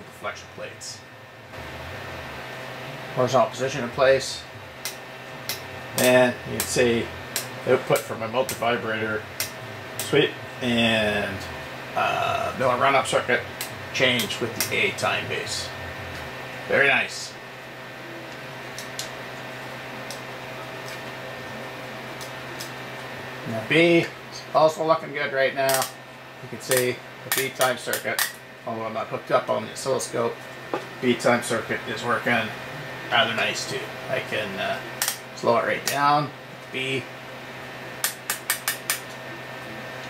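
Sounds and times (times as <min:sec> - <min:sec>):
oscilloscope hum and hiss: 0:00.0 - 0:40.0
rotary switch clicks: 0:04.8 - 0:08.7, 0:09.4 - 0:10.2, 0:26.7 - 0:28.4, 0:38.0 - 0:39.2.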